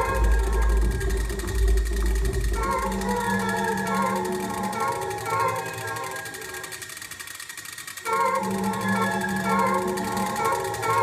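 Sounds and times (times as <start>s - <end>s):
deep pulsing bass drone: 0.0s - 3.9s
steady low hum: 0.0s - 11.0s.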